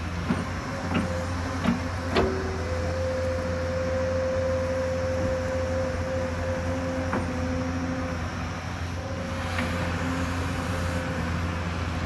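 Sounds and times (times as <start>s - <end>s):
excavator diesel engine running: 0.0s - 12.0s
hydraulic whine: 0.0s - 12.0s.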